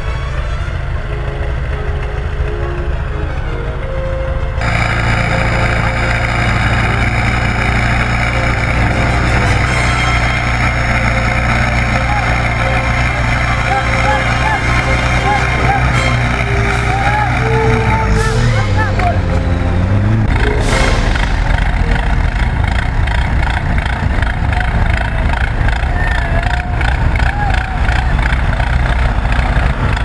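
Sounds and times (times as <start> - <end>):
background music: 0.0 - 23.9
off-road vehicle engine running: 0.0 - 30.0
people's voices: 4.6 - 30.0.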